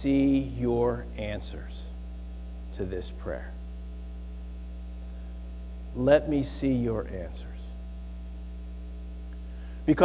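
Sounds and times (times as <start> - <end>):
electrical mains hum: 0.0 - 10.0
man's voice: 6.0 - 7.6.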